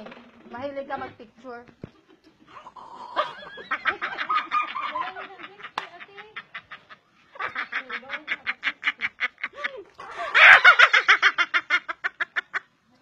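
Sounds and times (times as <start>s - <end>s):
women laughing hard: 3.0s - 12.6s.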